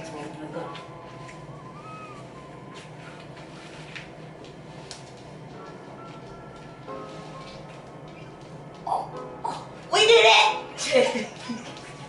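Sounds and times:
low steady hum: 0.0 - 12.0
scuffing and fabric rustling: 2.7 - 8.6.

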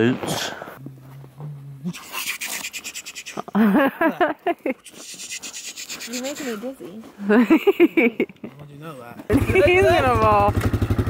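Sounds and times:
short wavering vocal sound: 1.4 - 3.5.

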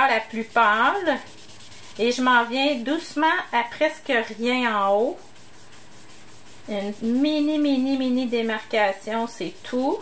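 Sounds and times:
sponge rubbing on card: 0.0 - 10.0.

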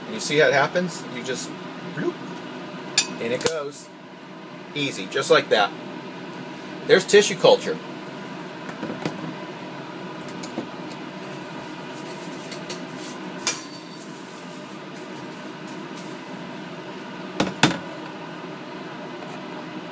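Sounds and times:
fan hum: 0.0 - 19.9.

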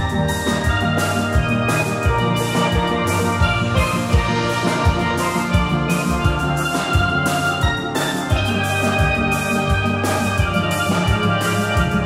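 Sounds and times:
drum kit beat: 0.0 - 12.0
low bass pan notes: 0.0 - 12.0
steel band playing: 0.0 - 12.0.

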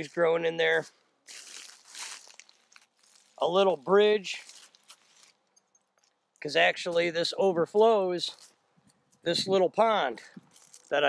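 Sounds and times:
footsteps crunching dry leaves: 0.0 - 5.5, 6.8 - 8.7, 10.3 - 11.0.

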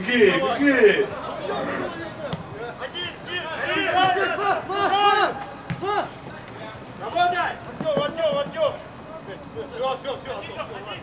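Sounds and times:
men shouting drawn-out calls: 0.0 - 8.8.

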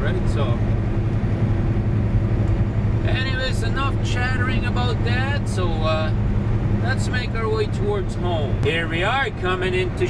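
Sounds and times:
diesel truck engine hum: 0.0 - 10.0
road noise: 0.0 - 10.0.

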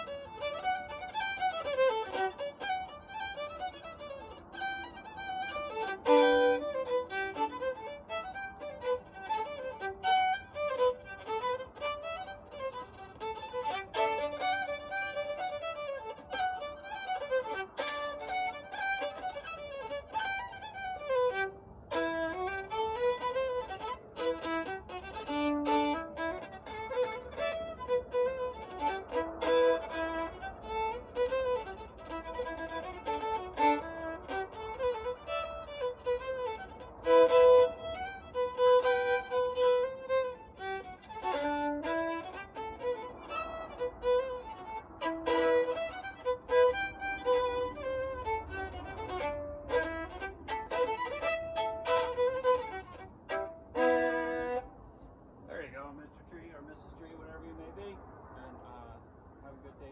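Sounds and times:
solo fiddle playing: 0.0 - 57.8.

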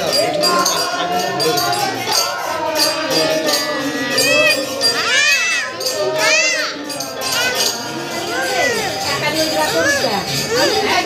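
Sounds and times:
group devotional singing: 0.0 - 11.0.

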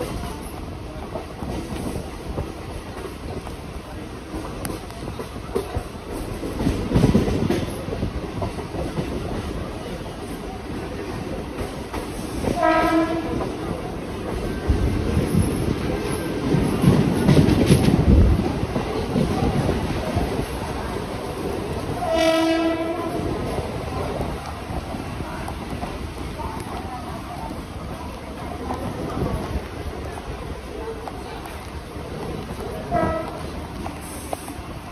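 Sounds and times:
train rumbling on rails: 0.0 - 34.9
train horn blast: 12.6 - 13.5, 22.0 - 23.2, 32.9 - 33.4.

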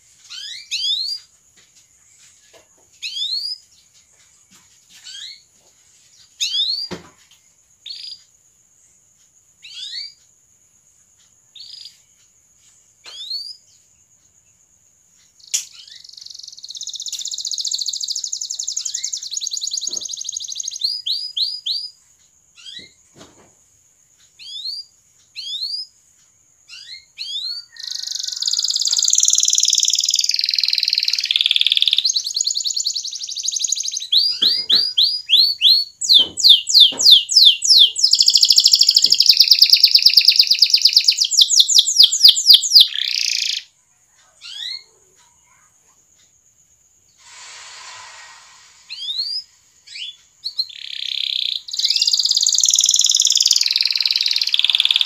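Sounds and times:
canary chirping: 0.2 - 1.3, 3.0 - 3.8, 4.9 - 5.5, 6.1 - 7.0, 7.8 - 8.3, 9.6 - 10.3, 11.4 - 12.1, 15.2 - 23.0, 24.3 - 26.0, 26.6 - 45.6, 48.9 - 55.0
canary rolling trill: 26.8 - 43.6, 50.0 - 55.0.

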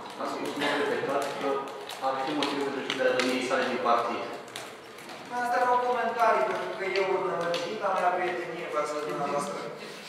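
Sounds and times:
person speaking: 5.2 - 10.0.

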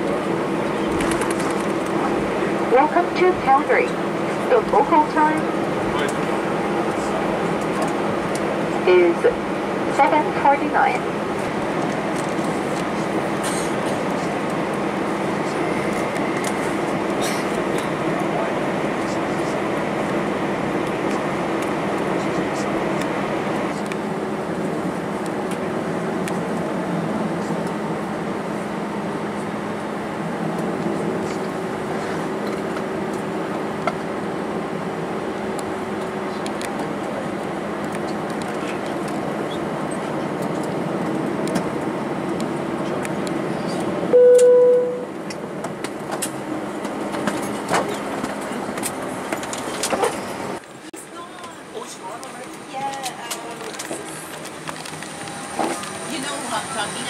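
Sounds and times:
aircraft cabin engine noise: 0.0 - 57.0.

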